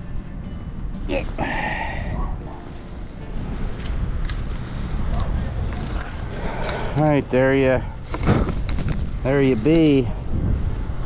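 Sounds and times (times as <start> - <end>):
wind rumbling on microphone: 1.3 - 11.0.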